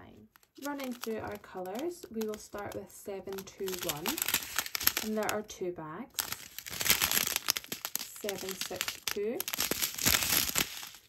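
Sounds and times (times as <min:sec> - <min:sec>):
plastic bags crinkling: 0:00.3 - 0:05.5, 0:06.1 - 0:11.0.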